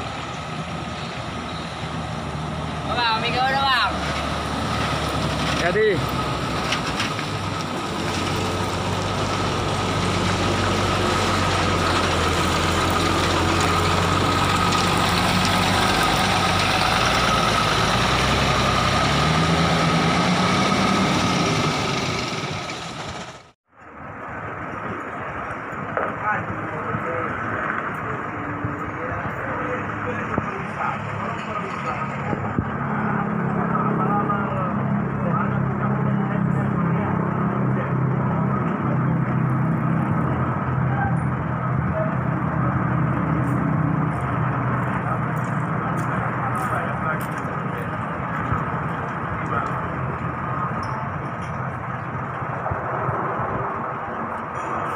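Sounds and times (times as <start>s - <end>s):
diesel bus engine running close: 0.0s - 54.9s
distant diesel bus engine: 0.0s - 54.9s.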